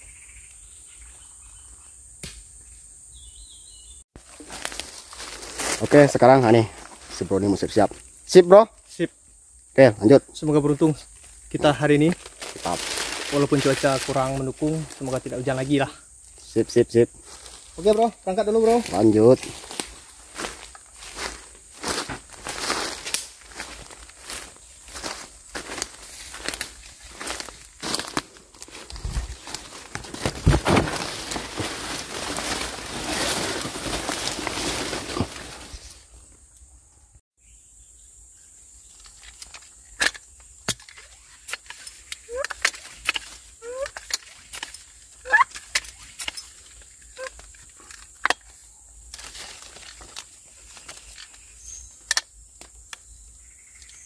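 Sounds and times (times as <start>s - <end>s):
high insect whine: 0.0s - 54.0s
footsteps crunching through undergrowth: 4.2s - 8.2s, 11.0s - 15.8s, 17.0s - 36.2s, 49.1s - 51.8s
leaves and branches rustling: 4.2s - 36.6s, 38.7s - 54.0s.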